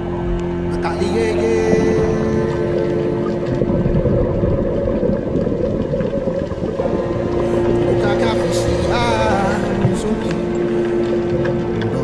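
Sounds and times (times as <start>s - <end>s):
low hum: 0.0s - 12.0s
muffled underwater rumble: 0.0s - 12.0s.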